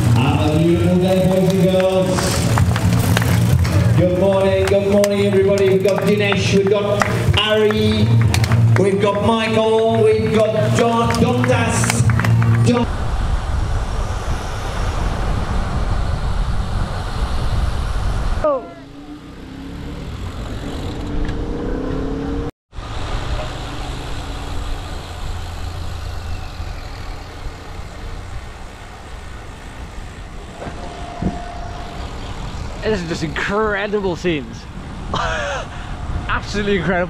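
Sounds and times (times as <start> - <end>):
wind buffeting microphone: 0.0 - 21.7, 24.4 - 37.0
bicycle tyre noise on tarmac: 0.0 - 37.0.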